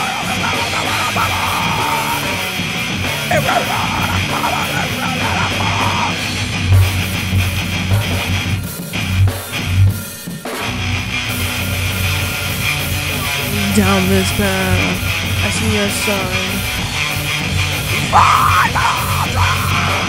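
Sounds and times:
rock guitar and drums: 0:00.0 - 0:20.0
heavy low hits: 0:16.6 - 0:20.0.

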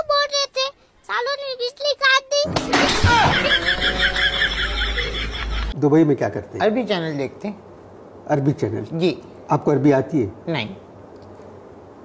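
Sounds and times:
child's voice: 0:00.0 - 0:02.6.

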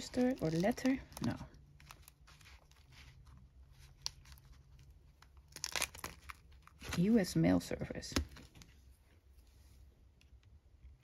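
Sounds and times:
paper rustling: 0:00.0 - 0:07.3.

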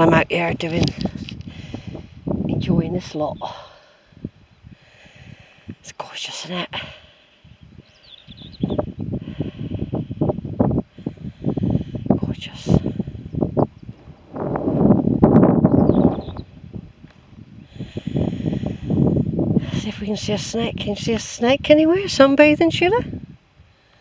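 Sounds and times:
wind buffeting microphone: 0:00.0 - 0:05.9, 0:06.8 - 0:23.8
faint bird chirps: 0:07.2 - 0:09.2, 0:15.5 - 0:16.6.

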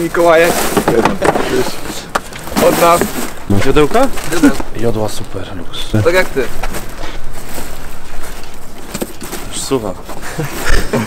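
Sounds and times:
rummaging in cardboard box: 0:00.0 - 0:11.0.

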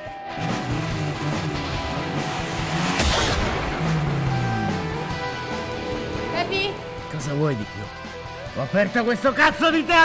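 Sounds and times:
car accelerating hard: 0:00.3 - 0:07.5.

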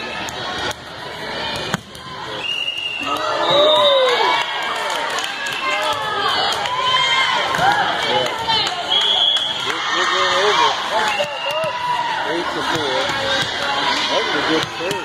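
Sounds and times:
crowd talking and calling out: 0:00.0 - 0:15.0.

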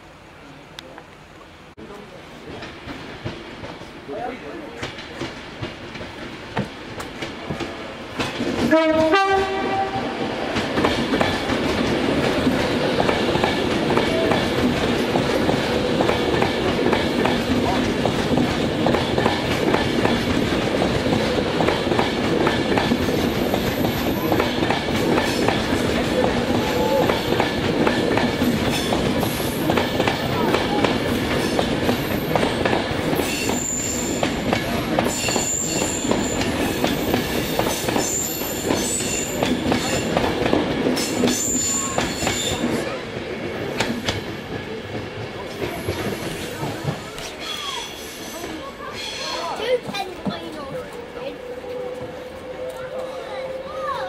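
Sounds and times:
train wheels rushing on rail: 0:00.8 - 0:54.0
two-tone train horn: 0:08.6 - 0:10.3, 0:51.4 - 0:54.0.

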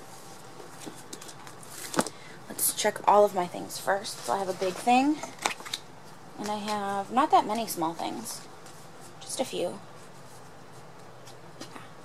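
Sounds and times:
steady quiet hiss: 0:00.0 - 0:12.0.

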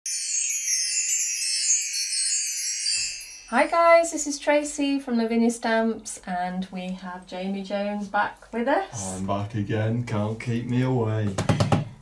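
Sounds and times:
twinkling chimes and bells: 0:00.0 - 0:04.6.

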